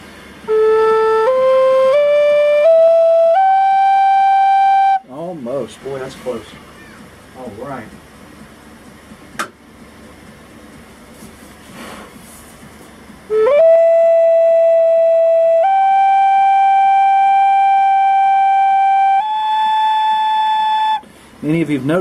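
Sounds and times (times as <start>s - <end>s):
flute long notes: 0.4s - 5.2s, 13.3s - 21.1s.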